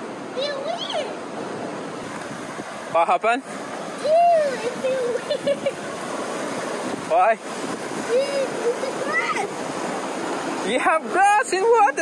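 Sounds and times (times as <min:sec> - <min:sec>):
surf breaking on rocks: 0:00.0 - 0:12.0.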